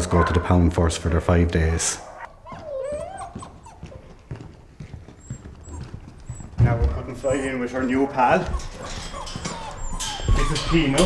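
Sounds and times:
puppy whimpering: 0:02.0 - 0:04.3, 0:05.1 - 0:11.0
footsteps on concrete: 0:02.3 - 0:10.6.

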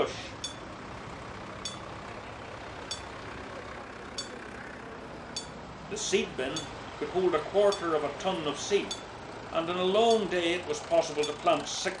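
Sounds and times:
tractor engine running: 0:00.0 - 0:12.0
metallic bell ping: 0:00.4 - 0:00.7, 0:01.6 - 0:01.9, 0:02.9 - 0:03.1, 0:04.2 - 0:04.4, 0:05.4 - 0:05.6, 0:08.9 - 0:09.1.

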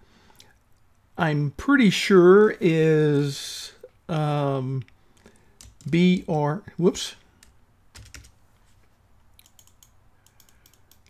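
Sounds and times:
computer keyboard keystrokes: 0:05.6 - 0:06.0, 0:07.4 - 0:08.3, 0:09.4 - 0:11.0.

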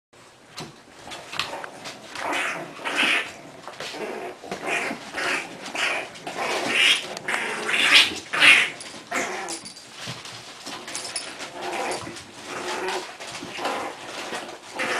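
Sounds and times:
puppies growling and yapping: 0:00.9 - 0:14.9.

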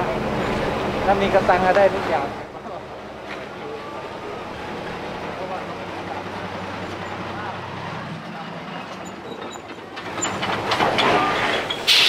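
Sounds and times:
diesel truck engine: 0:00.0 - 0:12.0
cargo racks rattling: 0:08.6 - 0:12.0.

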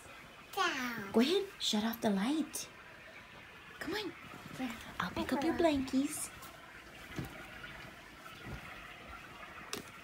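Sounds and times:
faint rustling and handling: 0:04.2 - 0:10.0.

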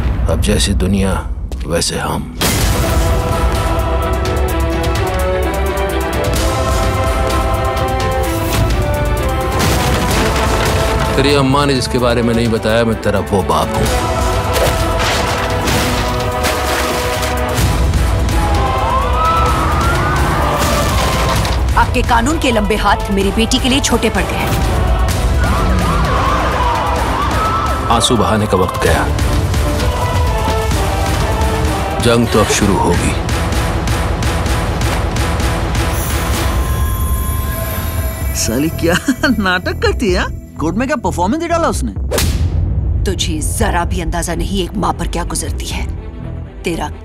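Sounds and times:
dramatic background music: 0:00.0 - 0:47.0
sirens wailing: 0:18.2 - 0:33.1
person speaking: 0:32.0 - 0:33.2.

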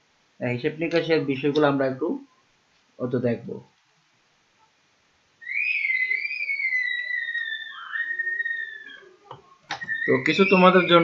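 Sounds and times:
whistle-like falling tone: 0:05.4 - 0:09.1, 0:09.7 - 0:11.0.

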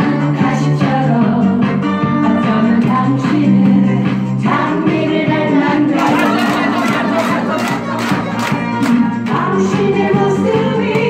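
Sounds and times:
song playing: 0:01.2 - 0:11.0
crowd calling out in unison: 0:06.0 - 0:08.2
people clapping in time: 0:06.0 - 0:09.5.

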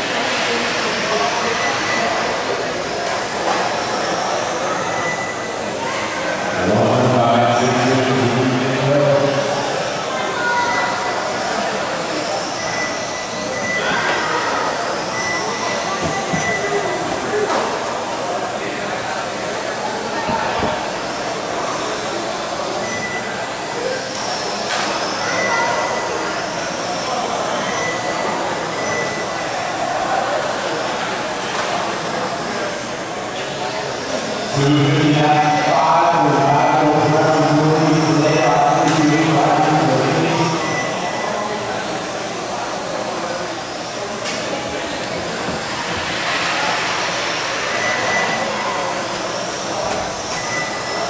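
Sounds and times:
high motor whines: 0:32.0 - 0:51.0.

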